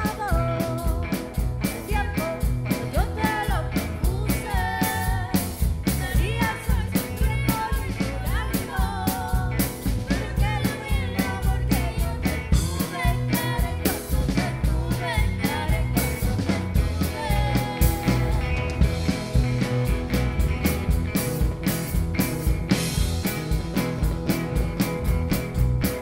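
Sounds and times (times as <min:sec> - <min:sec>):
women singing: 0:00.0 - 0:19.0
live rock band playing: 0:00.0 - 0:26.0.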